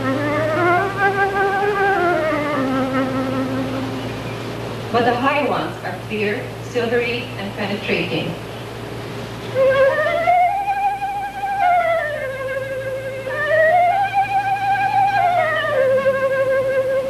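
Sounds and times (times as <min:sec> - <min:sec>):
flute playing with vibrato: 0:00.0 - 0:04.5, 0:09.5 - 0:17.0.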